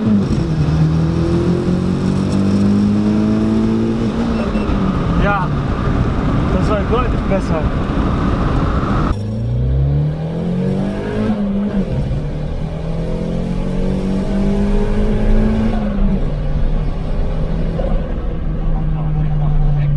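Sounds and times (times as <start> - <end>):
car engine pulling through gears: 0.0 - 19.9.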